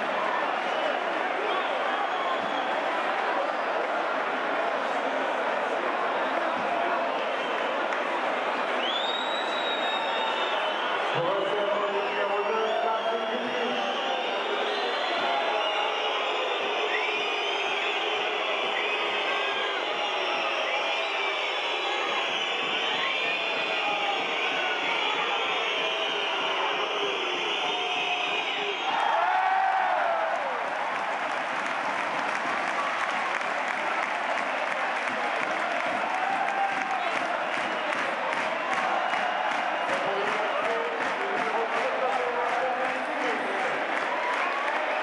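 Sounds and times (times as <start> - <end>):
crowd cheering and applause: 0.0 - 45.0
crowd voices din: 0.0 - 45.0.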